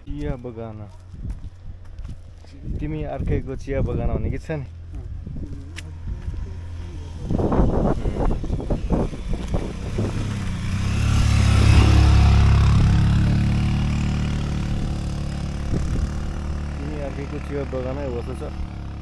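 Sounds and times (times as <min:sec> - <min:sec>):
vehicle engine rumble passing: 0:00.0 - 0:19.0.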